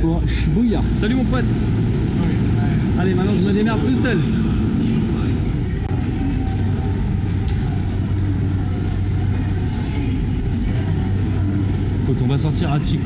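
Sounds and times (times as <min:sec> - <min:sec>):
indistinct voices: 0:00.0 - 0:13.0
steady low hum: 0:00.0 - 0:13.0.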